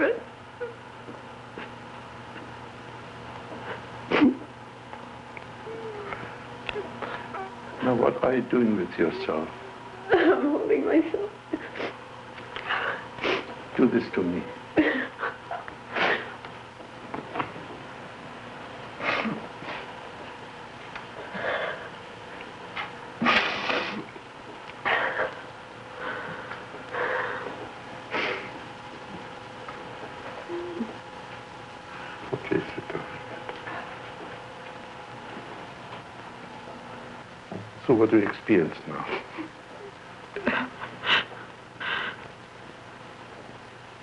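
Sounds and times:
steady electrical hum: 0.0 - 44.0
whimpers and sniffs: 5.6 - 7.6
woman crying quietly: 5.6 - 7.6, 30.4 - 31.0
woman breathing heavily: 21.2 - 22.0, 25.9 - 28.6, 41.0 - 42.3.

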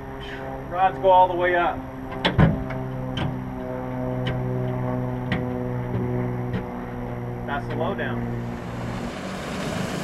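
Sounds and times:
low droning hum: 0.0 - 10.0.

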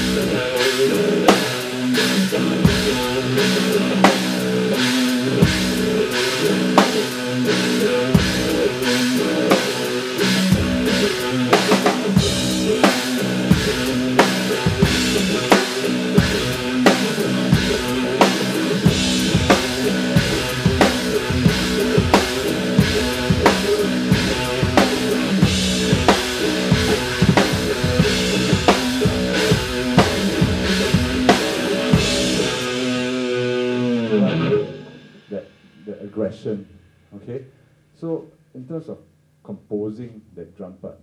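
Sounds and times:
backing track with guitar: 0.0 - 37.2
drum kit playing: 0.0 - 37.4.

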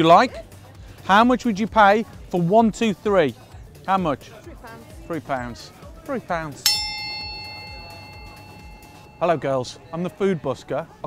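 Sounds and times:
bell chime ringing: 6.7 - 9.8.

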